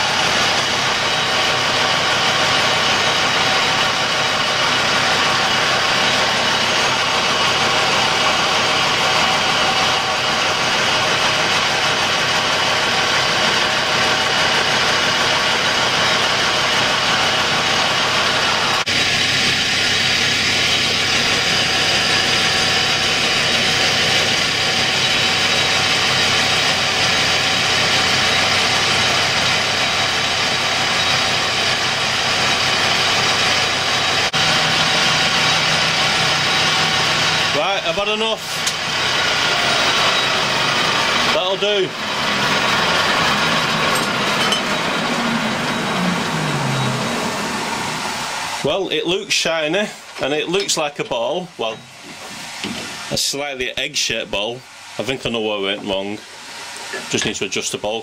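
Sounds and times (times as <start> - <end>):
lathe cutting metal bar: 0.0 - 58.0
metal lathe gear whine: 0.0 - 58.0.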